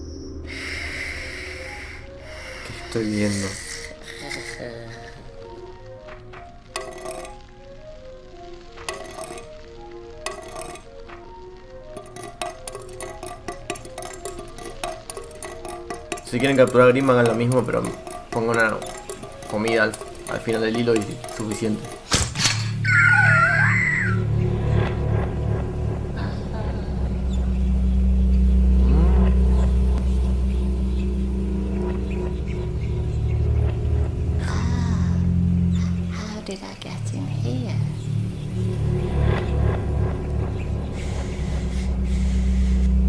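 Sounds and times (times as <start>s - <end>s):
dark low drone: 0.0s - 43.0s
wavering high sound: 22.8s - 36.0s.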